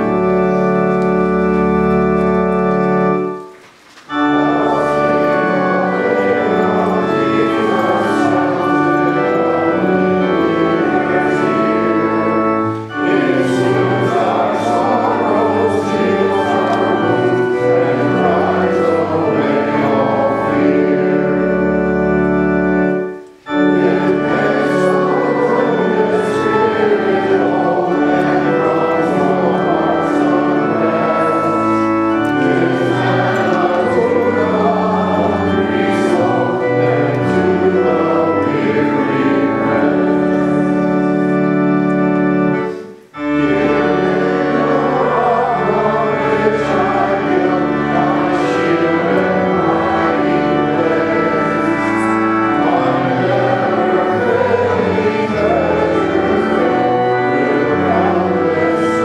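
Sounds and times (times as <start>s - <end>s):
congregation singing a hymn: 0.0s - 59.0s
organ chords: 0.0s - 59.0s.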